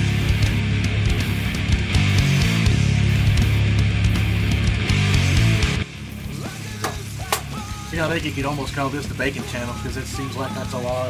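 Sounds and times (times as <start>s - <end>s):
faint background music: 5.9s - 11.0s.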